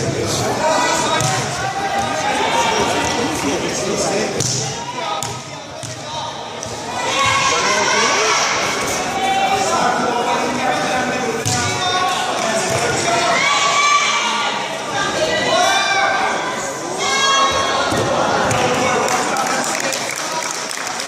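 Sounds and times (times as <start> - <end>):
people talking and calling out: 0.0 - 21.0.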